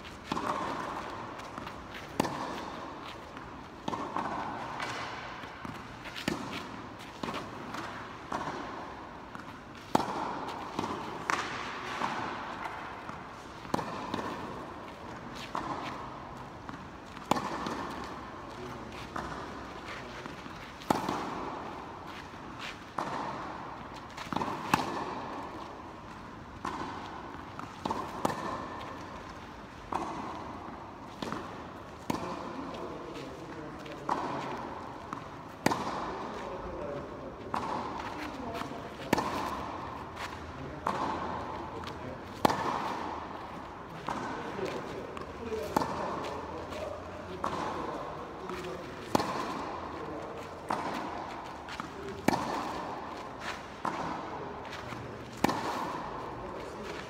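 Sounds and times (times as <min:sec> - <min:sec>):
tennis racket hitting ball: 0:00.0 - 0:57.0.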